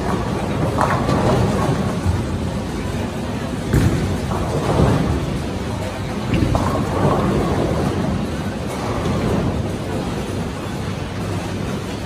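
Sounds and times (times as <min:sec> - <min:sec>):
bowling pins clattering: 0:00.0 - 0:10.7
bowling balls rolling: 0:00.0 - 0:12.0.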